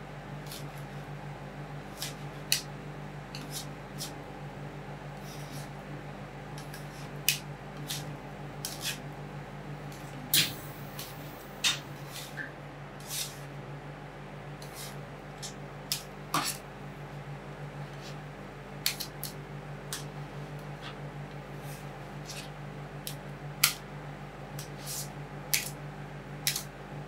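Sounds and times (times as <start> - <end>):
steady low hum: 0.0 - 27.0
metal spatulas tapping and scraping: 8.6 - 9.0, 14.6 - 16.6.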